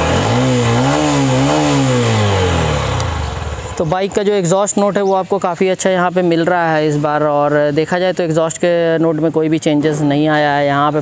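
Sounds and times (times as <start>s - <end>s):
motorcycle engine revving: 0.0s - 5.0s.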